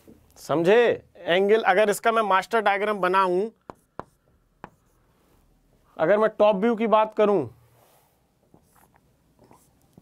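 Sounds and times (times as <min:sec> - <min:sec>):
marker tapping on whiteboard: 0:03.6 - 0:05.0
marker strokes on whiteboard: 0:03.6 - 0:05.4, 0:07.8 - 0:10.0.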